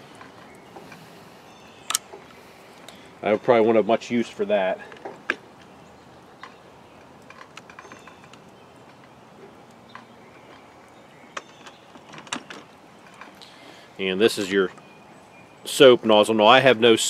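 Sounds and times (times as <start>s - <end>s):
small clicks and handling knocks: 4.8s - 5.7s, 6.4s - 13.5s.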